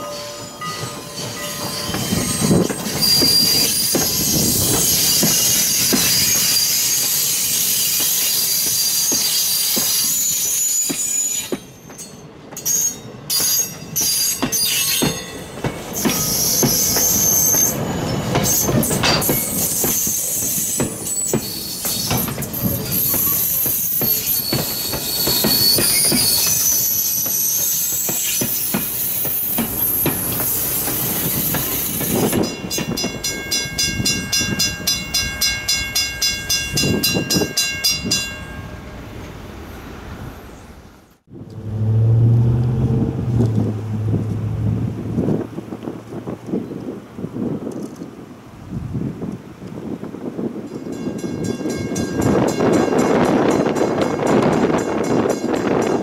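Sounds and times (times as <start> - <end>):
wheels squealing on rails: 0.0 - 47.9
train coaches rolling past: 0.0 - 56.0
rail-joint clicks: 0.1 - 38.6.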